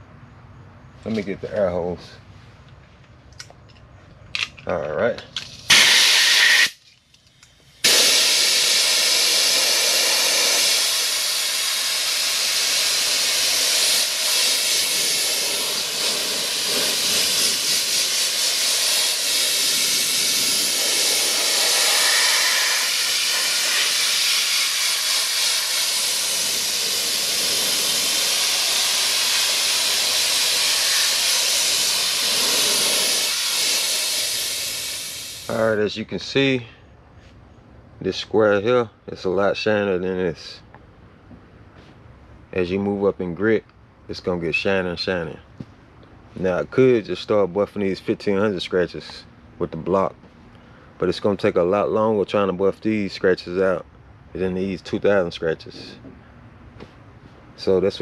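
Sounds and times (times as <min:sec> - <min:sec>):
compressed-air blow gun hissing: 0:05.7 - 0:06.8, 0:07.6 - 0:35.7.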